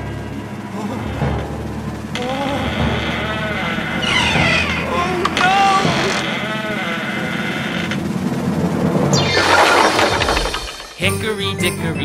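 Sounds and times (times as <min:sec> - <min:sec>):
bending wavering cartoon cries: 0:02.1 - 0:07.4
loud wooden crash: 0:09.2 - 0:11.0
cartoon music: 0:11.0 - 0:12.0.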